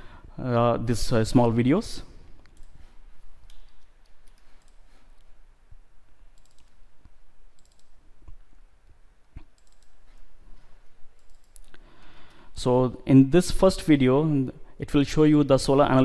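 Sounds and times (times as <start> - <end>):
computer mouse clicking: 2.4 - 5.3, 6.3 - 10.3, 11.2 - 12.4.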